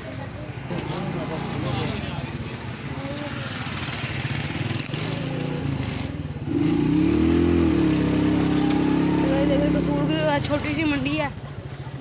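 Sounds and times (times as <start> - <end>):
motorcycle rickshaw engine running: 0.0 - 12.0.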